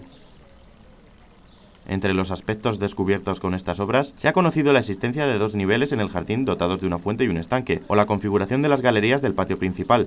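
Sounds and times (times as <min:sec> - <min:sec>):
faint background hiss: 0:00.0 - 0:10.0
man's voice-over: 0:01.9 - 0:10.0.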